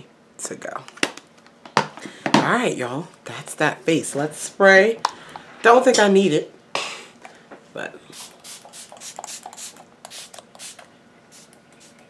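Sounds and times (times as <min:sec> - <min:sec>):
spray bottle hissing: 0:08.2 - 0:12.0.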